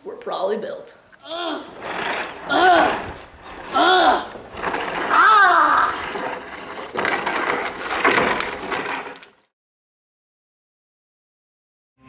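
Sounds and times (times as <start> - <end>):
boys grunting and crying out: 1.2 - 6.1.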